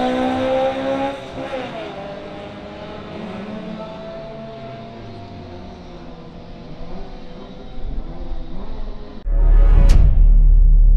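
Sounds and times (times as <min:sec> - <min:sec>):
distant drag car engines droning: 0:00.0 - 0:09.2.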